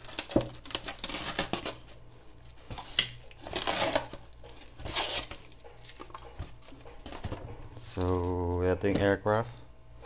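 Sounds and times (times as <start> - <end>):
plastic and styrofoam packaging rustling: 0.0 - 9.6.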